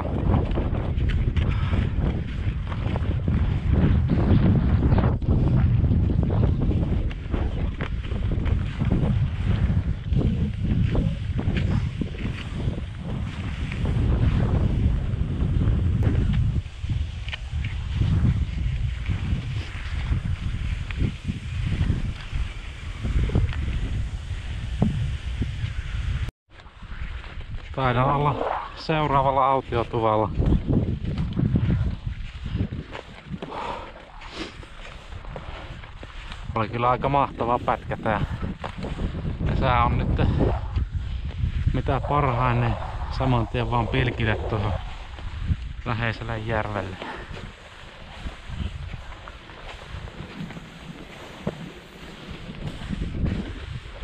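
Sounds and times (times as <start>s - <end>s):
gusty wind buffeting microphone: 0.0s - 54.0s
skis swishing on packed snow: 6.5s - 14.9s, 16.2s - 30.4s, 31.0s - 39.3s, 40.9s - 54.0s
ski pole plants: 16.0s - 54.0s.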